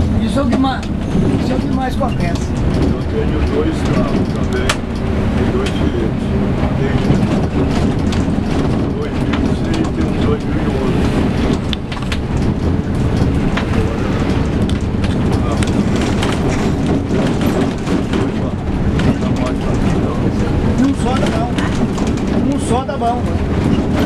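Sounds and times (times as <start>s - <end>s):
bodywork rattles and clicks: 0.0s - 24.0s
bus engine and tyre noise: 0.0s - 24.0s.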